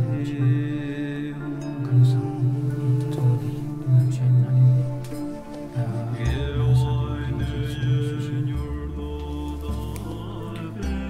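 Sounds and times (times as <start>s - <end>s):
mantra chanting: 0.0s - 11.0s.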